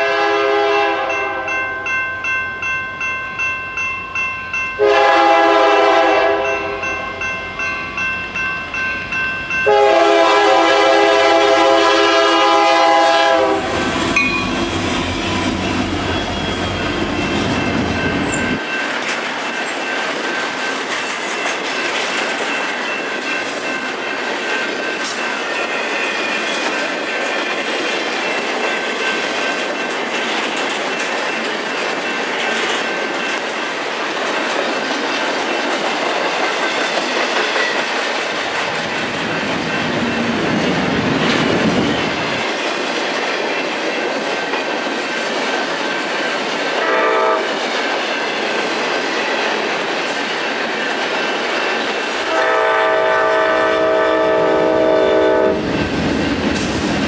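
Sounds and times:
train horn blast: 0.0s - 1.6s, 4.8s - 6.8s, 9.6s - 14.0s, 46.8s - 47.5s, 52.2s - 55.6s
freight train wheels rumbling: 0.0s - 57.0s.

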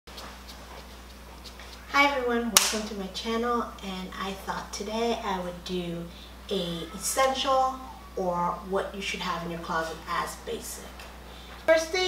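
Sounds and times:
electrical hum: 0.1s - 12.0s
woman's voice: 1.9s - 11.1s, 11.7s - 12.0s.

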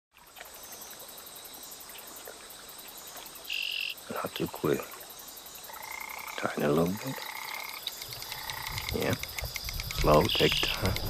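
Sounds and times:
insects and frogs pulsing: 0.2s - 11.0s.

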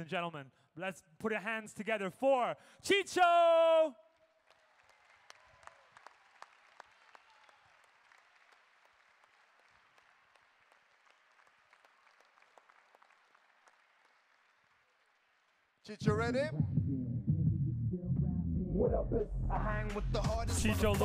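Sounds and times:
distant crowd applause: 4.4s - 15.9s.

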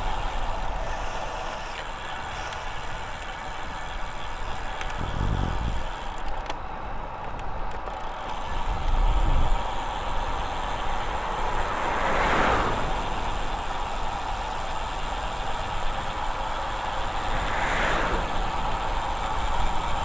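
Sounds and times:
tyre noise on asphalt: 0.0s - 20.0s
wind rushing over microphone: 4.9s - 5.9s, 8.6s - 9.6s.

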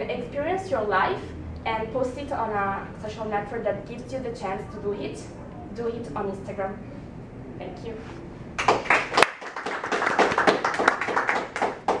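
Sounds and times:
people clapping: 8.6s - 12.0s.

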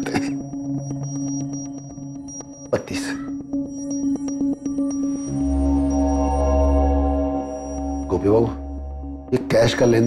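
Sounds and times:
light ticking beats: 0.0s - 10.0s
low held drone: 3.3s - 10.0s.

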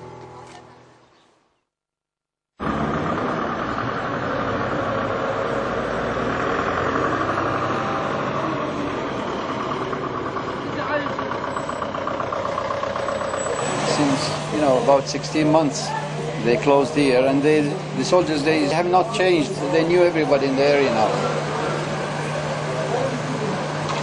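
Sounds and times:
vehicle engine idling: 2.6s - 24.0s
people talking: 10.6s - 11.3s, 13.4s - 24.0s.

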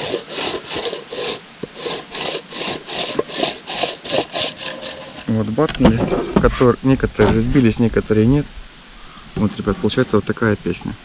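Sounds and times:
crusher grinding bait balls: 0.0s - 5.4s.

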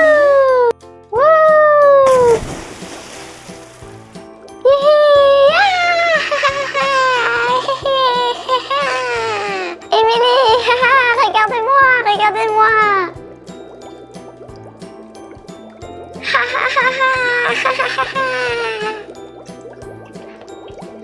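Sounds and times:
splashing in a pool: 2.0s - 9.4s.

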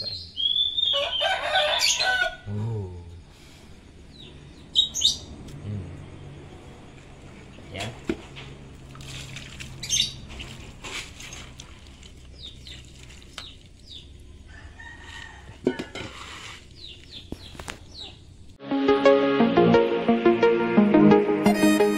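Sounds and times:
small birds chirping: 0.0s - 8.0s, 9.7s - 14.6s, 16.6s - 18.6s
rooster crowing: 0.8s - 2.5s, 14.4s - 16.0s
water splashing: 7.8s - 14.3s
electronic music: 18.6s - 21.9s.

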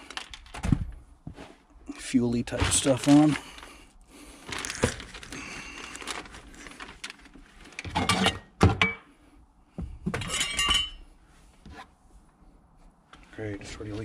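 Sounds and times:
plastic sheet rustling: 0.0s - 0.9s, 2.4s - 8.0s
metal tools clinking: 10.2s - 11.0s.

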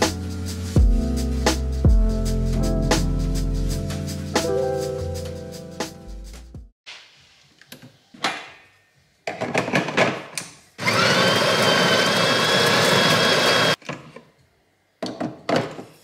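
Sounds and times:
coffee grinder whirring: 10.8s - 13.8s.

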